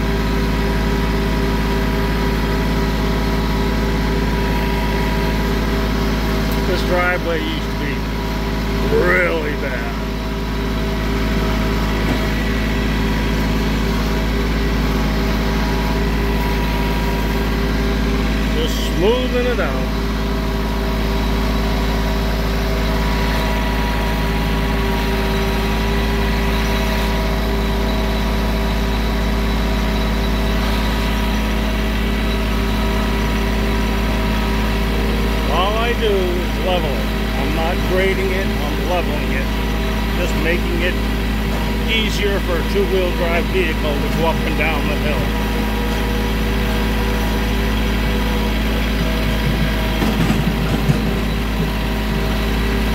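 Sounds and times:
tractor engine running: 0.0 - 52.9.

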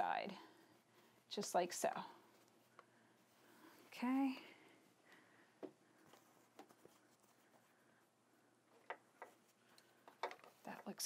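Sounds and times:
fabric handling: 0.0 - 11.0.

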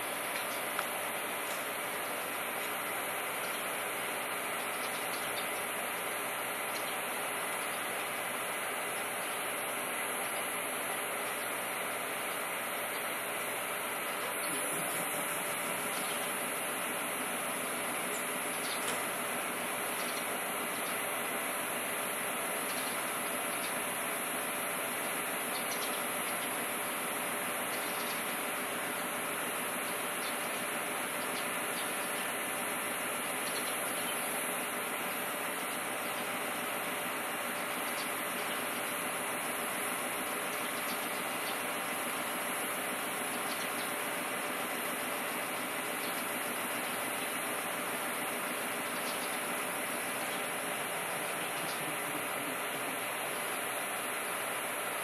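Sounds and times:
train equipment hum and hiss: 0.0 - 55.0.

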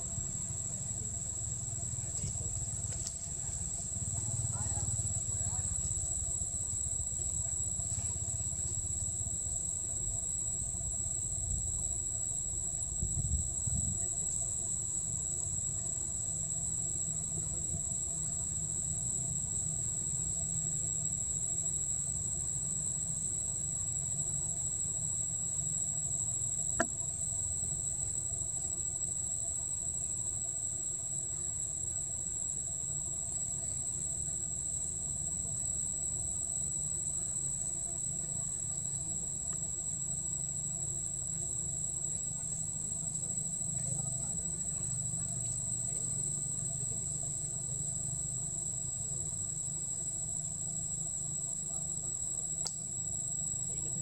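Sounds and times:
high-pitched insect chorus: 0.0 - 54.0
sharp click: 52.6 - 52.8.

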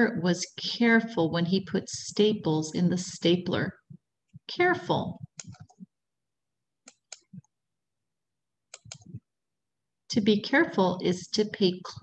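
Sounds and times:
computer mouse clicks: 5.2 - 5.9, 6.8 - 7.5, 8.7 - 9.2.

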